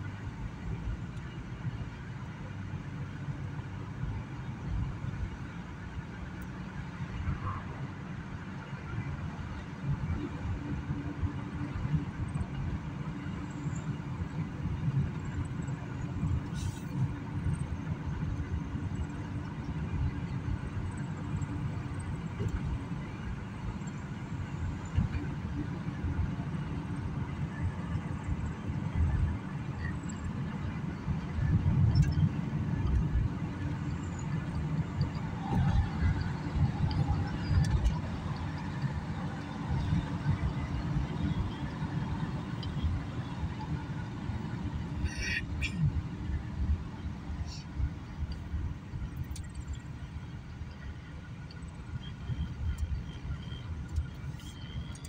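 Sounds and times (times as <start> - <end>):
car tyres and engine rumble: 0.0 - 55.0.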